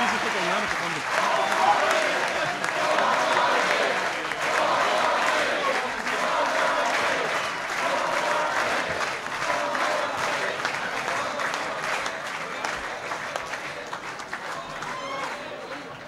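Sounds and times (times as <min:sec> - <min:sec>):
crowd applauding: 0:00.0 - 0:16.0.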